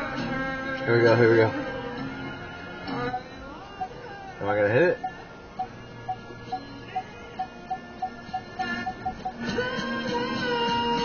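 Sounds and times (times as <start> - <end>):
music: 0.0 - 11.0
parking sensor beeping: 3.0 - 9.7.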